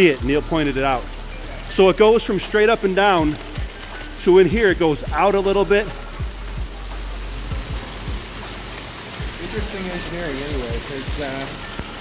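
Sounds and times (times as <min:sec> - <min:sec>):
reverberant tunnel hiss: 0:00.0 - 0:12.0.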